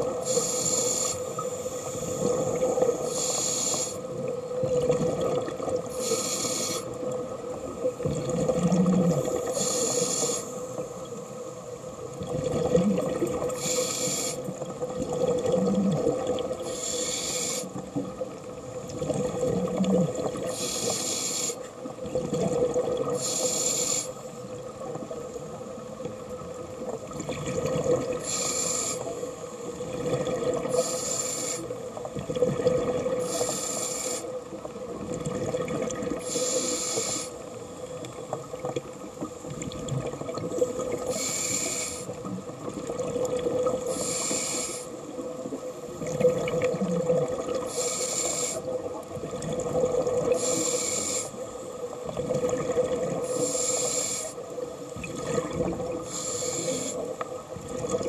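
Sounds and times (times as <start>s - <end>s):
scuba regulator breathing hiss: 0.0s - 4.2s, 5.9s - 7.0s, 9.3s - 11.0s, 13.5s - 14.6s, 16.6s - 17.8s, 20.4s - 21.7s, 23.1s - 24.4s, 28.1s - 29.6s, 30.6s - 31.9s, 33.2s - 34.4s, 36.2s - 37.8s, 41.0s - 42.2s, 43.8s - 45.1s, 47.6s - 48.8s, 50.3s - 51.5s, 53.2s - 54.5s, 56.0s - 57.2s.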